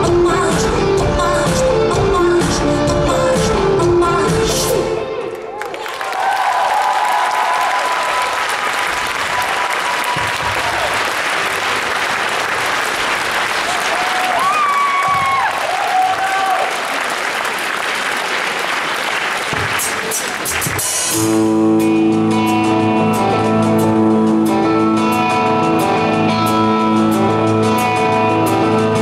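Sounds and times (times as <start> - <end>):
audience applauding and cheering: 5.2 - 21.2
guitar strumming chords: 21.1 - 29.0.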